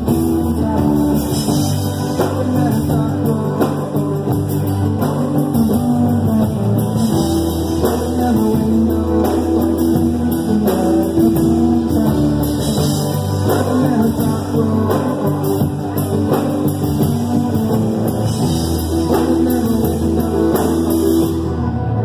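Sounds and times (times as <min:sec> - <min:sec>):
electric guitar: 0:00.0 - 0:22.0
live rock band playing: 0:00.0 - 0:22.0.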